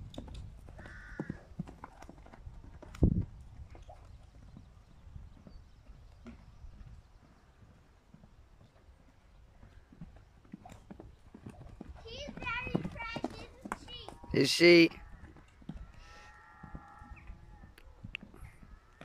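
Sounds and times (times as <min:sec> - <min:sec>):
hooves thudding on sand: 0:00.0 - 0:19.0.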